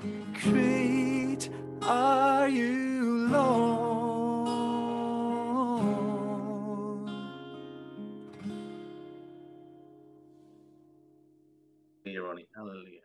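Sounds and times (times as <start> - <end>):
strummed acoustic guitar: 0.0 - 11.0
man singing: 0.3 - 7.2.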